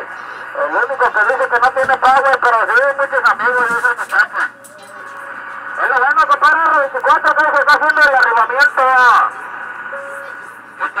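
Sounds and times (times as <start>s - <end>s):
radio static hiss: 0.0s - 4.5s, 5.2s - 11.0s
voice over radio: 0.6s - 4.5s, 5.8s - 9.3s.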